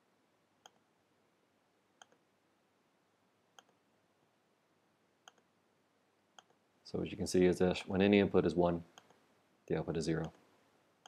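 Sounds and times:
computer mouse clicks: 0.6 - 0.9, 2.0 - 2.2, 3.6 - 3.8, 5.2 - 5.5, 6.4 - 6.6, 8.9 - 9.2.

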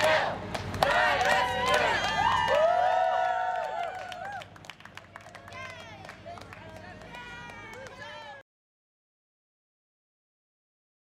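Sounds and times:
hands clapping: 0.0 - 2.6, 3.6 - 8.3
crowd cheering and whooping: 0.8 - 4.6.

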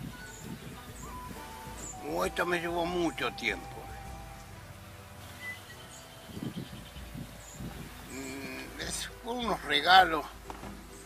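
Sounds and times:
faint high bird chirps: 5.2 - 8.7.

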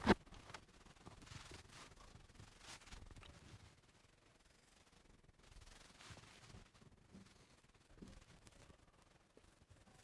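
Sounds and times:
stylus rubbing on tablet screen: 0.0 - 10.0.

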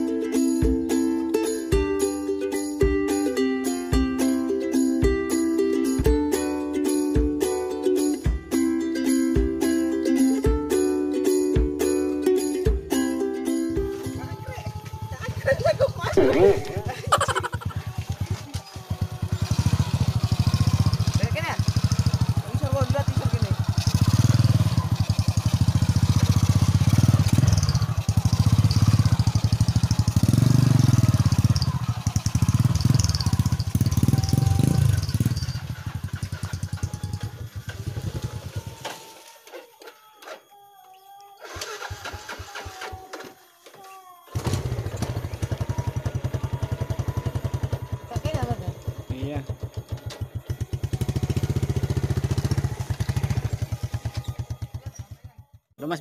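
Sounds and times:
motorcycle engine running: 12.7 - 38.8, 44.4 - 56.0.

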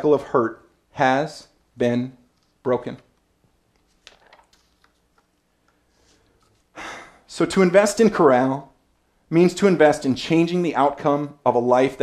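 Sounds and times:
paper sheet rustling: 3.7 - 5.2.

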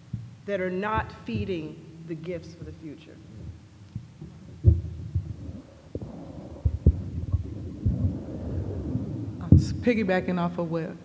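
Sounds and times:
microphone handling thumps: 0.0 - 10.3.

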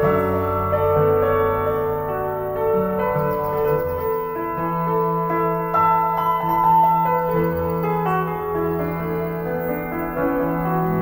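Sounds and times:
solo piano: 0.0 - 11.0.

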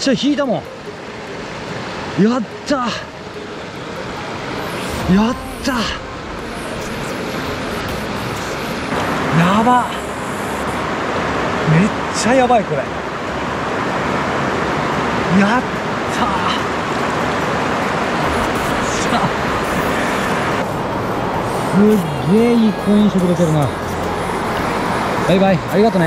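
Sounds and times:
mountain stream rushing: 0.0 - 26.0.

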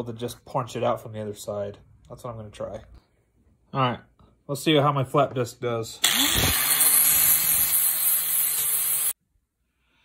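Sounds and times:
angle grinder grinding steel: 6.0 - 9.2.

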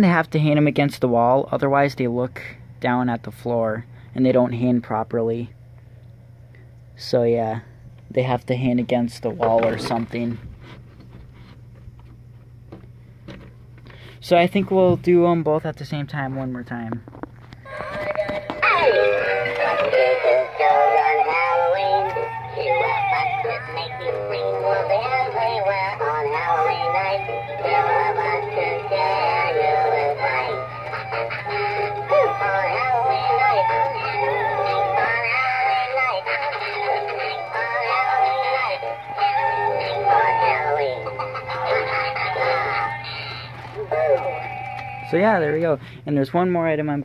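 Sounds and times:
steady low hum: 0.0 - 47.0
synthetic-sounding singing over music: 17.7 - 45.1.

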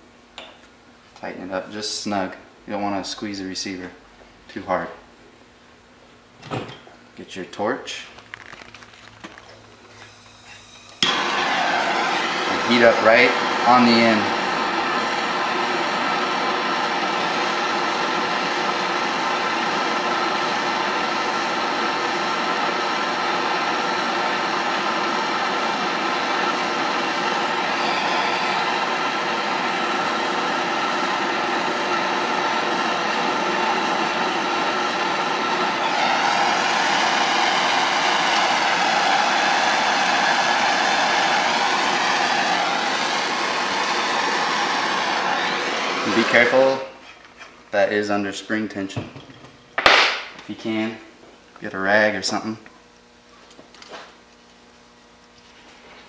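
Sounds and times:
gas torch roaring hiss: 9.9 - 47.1.

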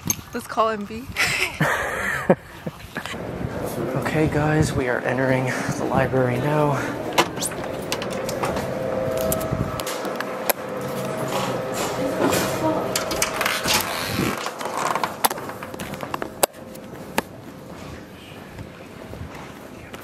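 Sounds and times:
indistinct voices: 3.0 - 20.0.

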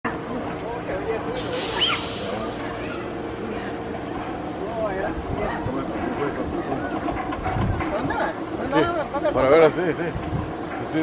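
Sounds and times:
people talking and calling out: 0.1 - 11.0
steady low hum: 0.1 - 11.0.

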